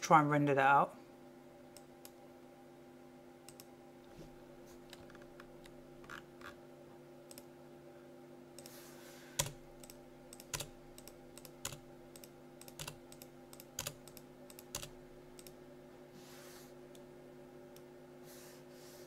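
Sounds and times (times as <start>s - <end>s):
steady low hum: 0.0s - 19.0s
keyboard and mouse clicks: 9.4s - 15.6s.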